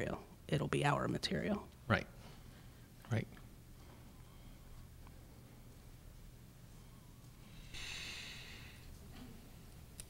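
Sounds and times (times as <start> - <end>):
breath into microphone: 7.4 - 9.0.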